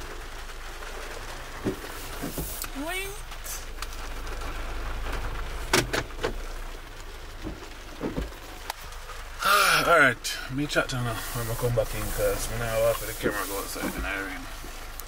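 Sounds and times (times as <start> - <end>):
car engine and road rumble: 0.0 - 15.0.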